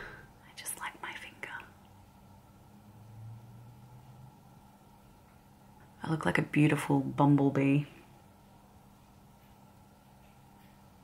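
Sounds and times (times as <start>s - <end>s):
soft breathy sounds: 0.0s - 1.8s
faint steady hum: 0.0s - 11.0s.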